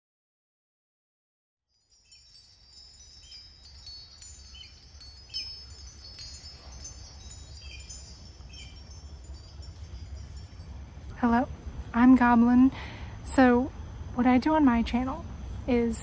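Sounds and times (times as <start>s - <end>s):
wind chimes ringing: 1.7s - 11.5s
steady low hum: 2.2s - 16.0s.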